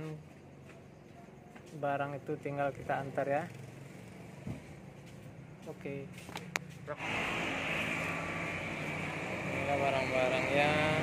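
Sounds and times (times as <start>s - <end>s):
vehicle engine running: 2.4s - 11.0s.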